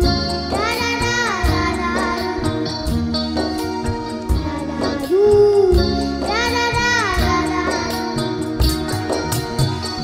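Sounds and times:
live backing music: 0:00.0 - 0:10.0
girl singing: 0:00.5 - 0:02.8, 0:04.3 - 0:08.3.

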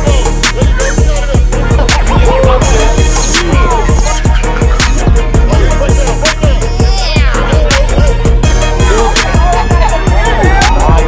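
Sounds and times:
hip hop beat with sliding bass: 0:00.0 - 0:11.0.

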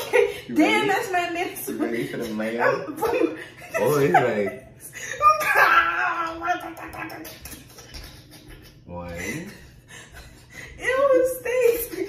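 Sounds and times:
woman laughing: 0:02.8 - 0:12.0.

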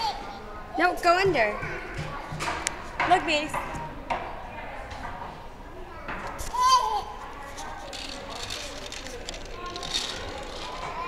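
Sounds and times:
children's chatter: 0:00.0 - 0:11.0.

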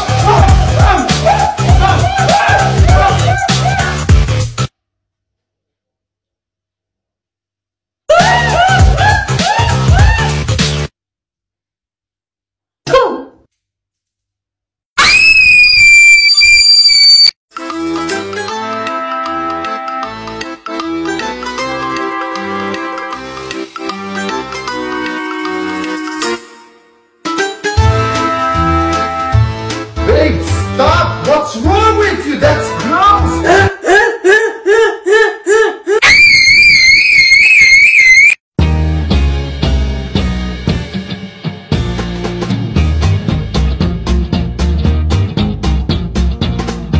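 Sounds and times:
rock music with drums: 0:00.0 - 0:04.7, 0:08.2 - 0:10.9, 0:38.6 - 0:46.9
high-pitched voice shrieking: 0:00.2 - 0:04.1, 0:15.0 - 0:17.3, 0:36.0 - 0:38.4
person screaming a high note: 0:36.0 - 0:38.4.

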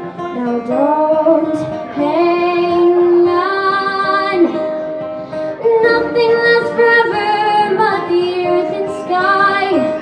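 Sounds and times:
acoustic guitar: 0:00.0 - 0:10.0
young woman singing: 0:00.3 - 0:04.8, 0:05.6 - 0:10.0.

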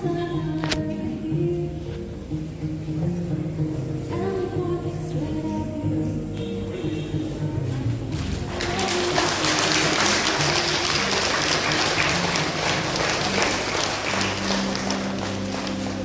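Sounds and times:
background music: 0:00.0 - 0:16.0
audience applauding: 0:08.2 - 0:16.0.

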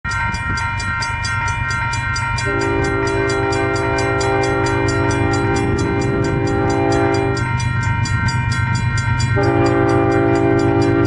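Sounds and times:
train low rumble: 0:00.0 - 0:11.0
train horn held chord: 0:02.4 - 0:07.5, 0:09.4 - 0:11.0.

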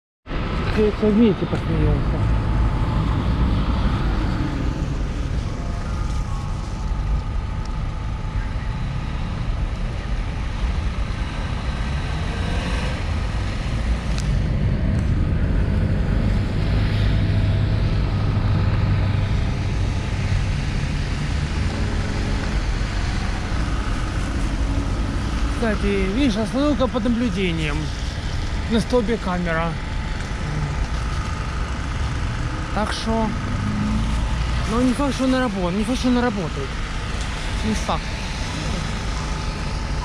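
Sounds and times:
cars passing on wet road: 0:10.9 - 0:40.0.

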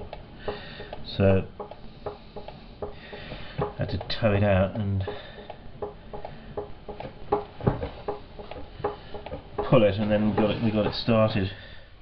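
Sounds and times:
light ringing clicks and taps: 0:00.0 - 0:04.2, 0:05.0 - 0:10.6
loud knock: 0:00.5 - 0:01.0, 0:01.6 - 0:04.0, 0:05.0 - 0:11.0.

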